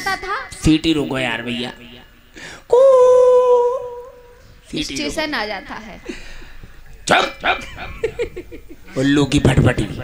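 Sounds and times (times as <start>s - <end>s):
man imitating dog barking: 2.7s - 4.2s, 7.1s - 7.8s.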